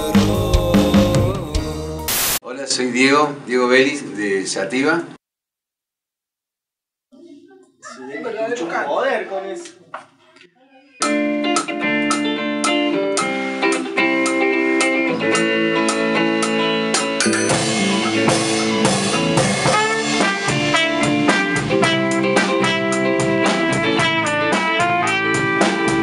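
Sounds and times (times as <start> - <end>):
drum kit steady beat: 0.0 - 2.4, 11.0 - 26.0
electric guitar: 11.0 - 26.0
rock band playing: 11.0 - 26.0.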